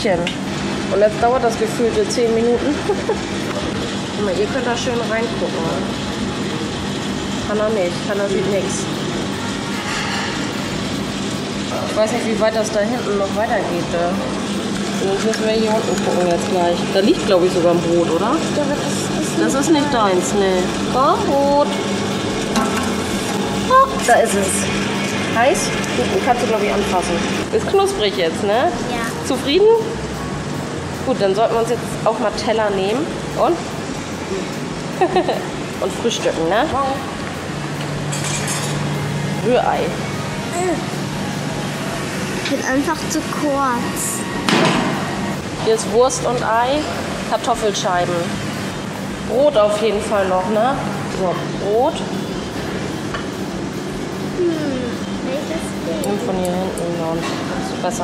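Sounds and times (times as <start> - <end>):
conveyor toaster humming: 0.0 - 58.0
plates and cutlery clinking: 38.1 - 38.9.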